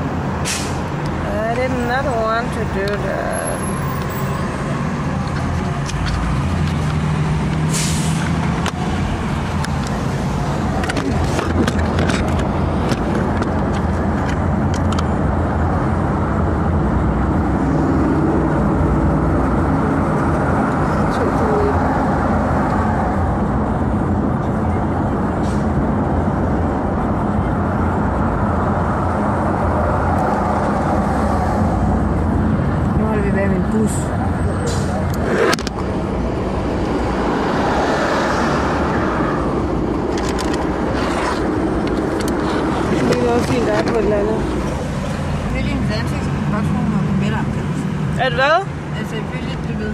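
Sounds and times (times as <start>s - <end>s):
car engine and road noise: 0.0s - 49.9s.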